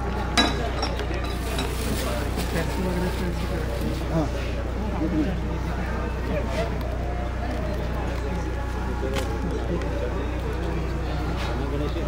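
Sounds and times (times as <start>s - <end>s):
indistinct background voices: 0.0s - 12.0s.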